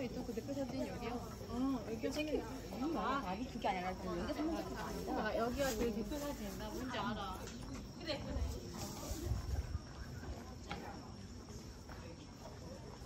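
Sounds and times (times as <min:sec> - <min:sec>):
people talking: 0:00.0 - 0:13.0.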